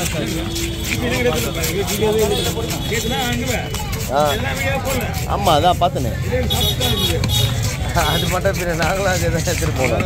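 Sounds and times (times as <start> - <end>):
people talking: 0.0 - 10.0
traffic rumble: 0.0 - 10.0.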